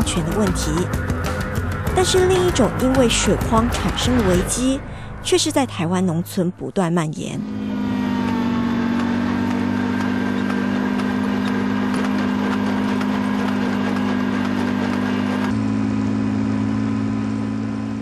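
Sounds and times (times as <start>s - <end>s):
machine engine running: 7.4s - 18.0s.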